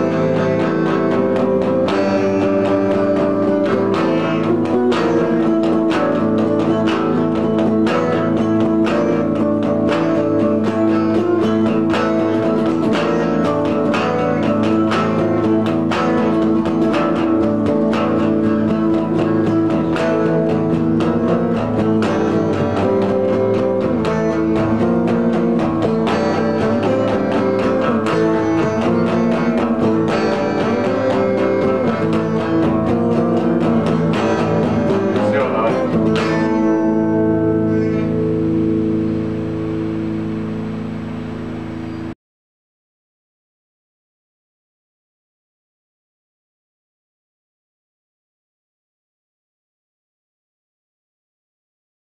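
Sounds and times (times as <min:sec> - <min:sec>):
electric guitars rock instrumental: 0:00.0 - 0:42.2
final guitar chord ringing: 0:00.0 - 0:42.2.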